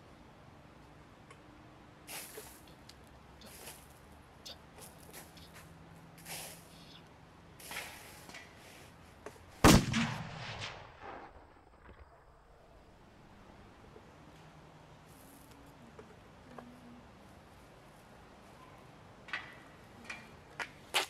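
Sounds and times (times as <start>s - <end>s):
loud bang with low rumble: 9.6s - 12.0s.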